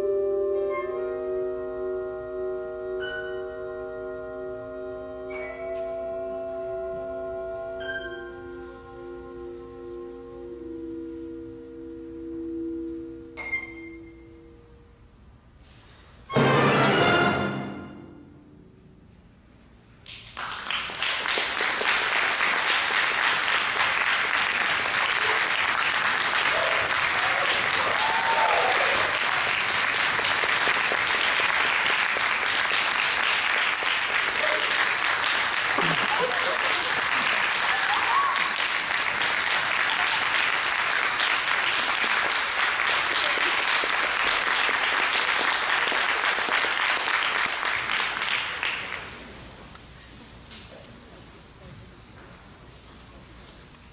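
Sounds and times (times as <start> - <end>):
audience applauding: 20.0 - 49.4.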